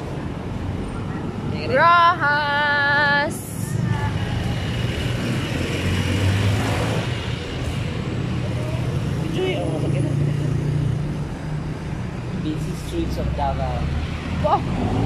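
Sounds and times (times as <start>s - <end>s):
vehicle engines rumbling: 0.0s - 15.0s.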